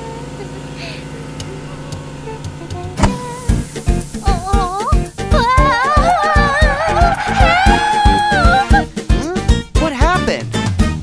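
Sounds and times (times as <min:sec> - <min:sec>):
cartoon vehicle motor hum: 0:00.0 - 0:09.6
music with strong beat: 0:01.9 - 0:11.0.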